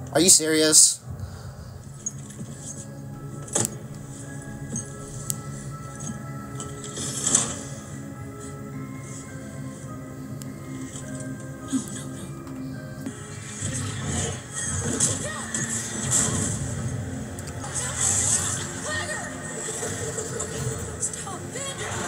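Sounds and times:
voices in dialogue: 20.9s - 22.0s.

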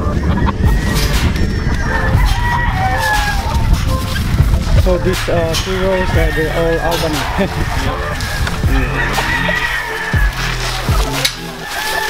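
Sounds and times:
roosters crowing: 0.0s - 12.0s.

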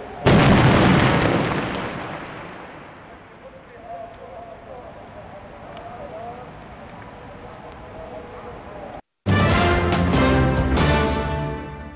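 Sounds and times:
fire crackling: 0.0s - 10.9s
explosion rumbling blast: 0.2s - 3.1s.

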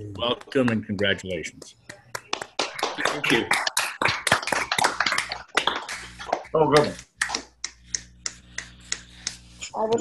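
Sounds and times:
people clapping: 0.2s - 9.5s.

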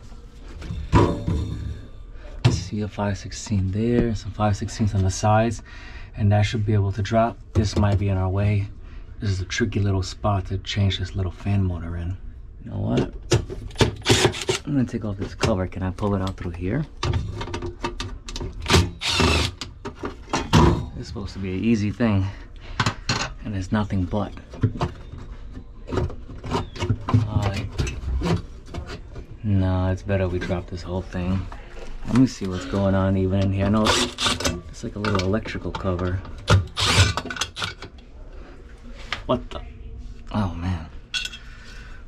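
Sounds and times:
cordless drill running: 19.0s - 19.6s, 36.8s - 37.0s.

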